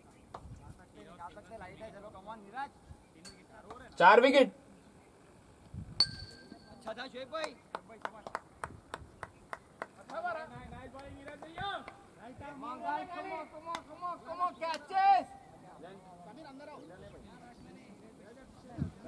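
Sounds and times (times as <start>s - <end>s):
sharp ringing click: 6.0s - 6.9s
sharp claps: 6.8s - 10.3s, 10.9s - 12.0s, 13.6s - 14.0s, 14.7s - 14.9s
men calling out: 11.4s - 17.2s.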